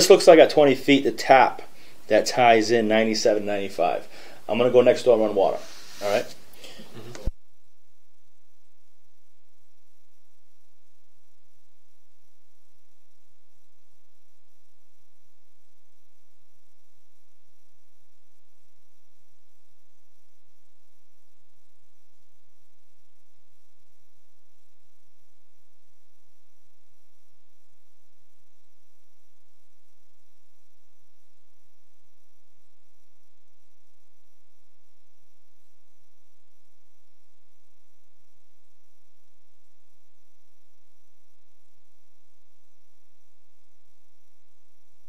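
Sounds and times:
electrical mains hum: 0.0 - 45.0
light hiss: 5.3 - 7.3.

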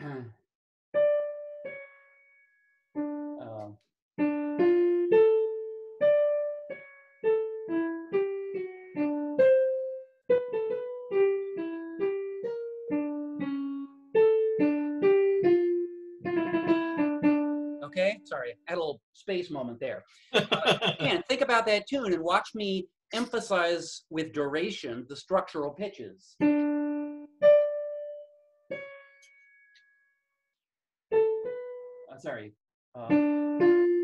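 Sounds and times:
digital piano melody: 1.0 - 18.8, 26.4 - 30.0, 31.1 - 34.0.

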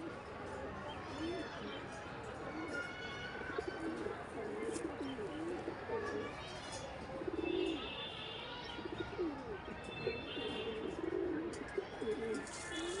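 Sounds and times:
pigeons cooing: 3.5 - 6.3, 7.2 - 7.9, 8.8 - 13.0.

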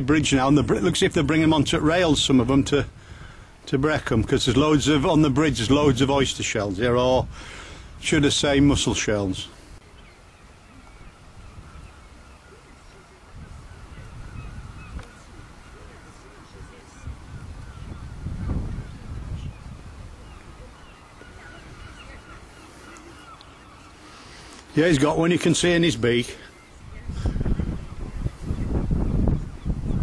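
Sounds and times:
birds piping calls: 4.4 - 30.0.

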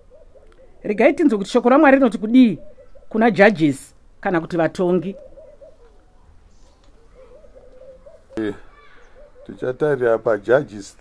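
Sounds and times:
dove cooing: 0.0 - 3.6, 4.4 - 10.5.

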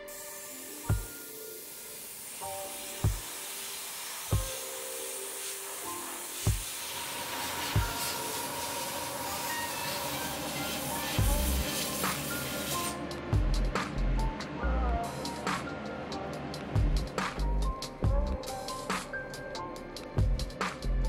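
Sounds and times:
airbrush spraying hiss: 0.0 - 13.1, 17.0 - 21.0
background music with soft bass beat: 0.0 - 21.0.

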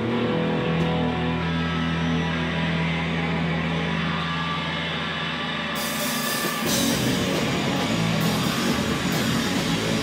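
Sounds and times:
electric guitar and bass drone: 0.0 - 10.0.

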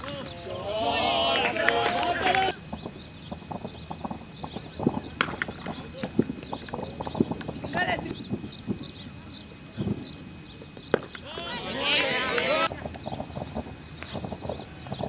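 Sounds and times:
sharp crack of cricket ball: 5.2 - 7.5, 10.8 - 11.2.

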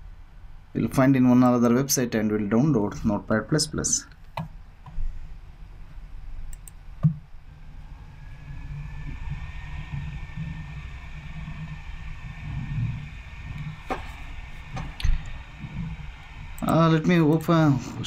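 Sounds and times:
faint high whine: 0.0 - 18.0
low computer hum: 0.0 - 18.0
computer mouse clicks: 6.5 - 7.2.

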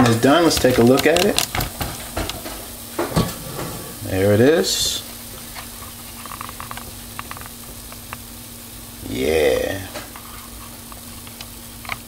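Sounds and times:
chicken sizzling: 0.0 - 12.0.

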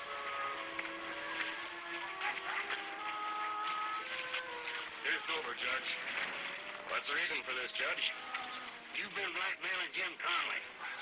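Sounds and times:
horse hooves walking: 0.0 - 9.5
background score of held notes: 0.0 - 10.8.

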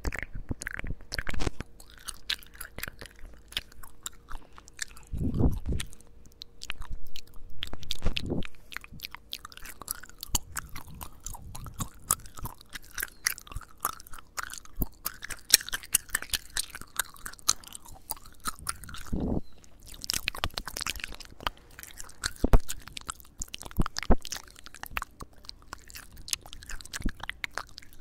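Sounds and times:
gum chewing clicks and smacks: 0.0 - 28.0
low muffled rumbles: 3.2 - 13.8, 17.8 - 24.2.

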